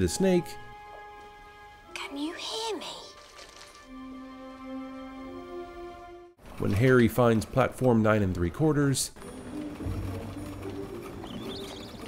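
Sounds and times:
soft sustained music: 0.0s - 6.4s, 9.2s - 12.0s
high bird chirp: 11.2s - 12.0s.

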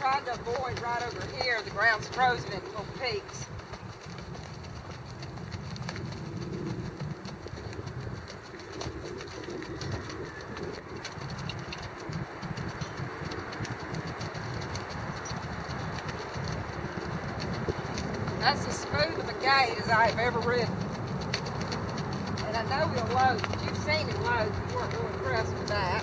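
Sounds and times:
horse hoofbeats on frozen dirt: 0.0s - 26.0s.

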